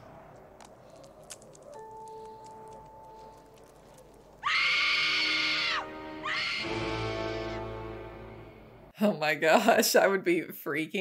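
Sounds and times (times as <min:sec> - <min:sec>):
loud high-pitched scream: 0:04.4 - 0:07.6.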